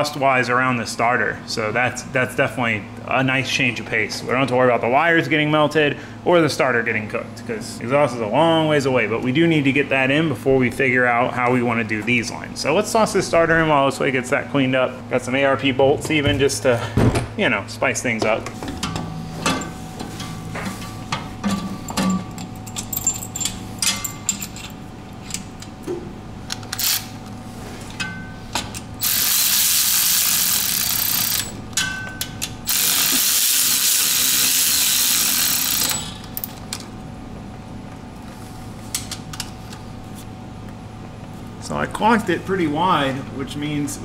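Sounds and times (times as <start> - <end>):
ratchet clicking: 26.5 - 27.1, 29.0 - 31.6, 32.7 - 36.6
cordless power tool running: 29.0 - 31.6, 32.7 - 36.2.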